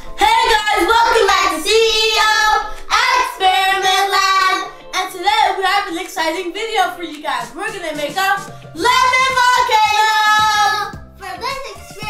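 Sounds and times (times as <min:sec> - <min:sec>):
children singing: 0:00.2 - 0:06.1, 0:08.8 - 0:11.0.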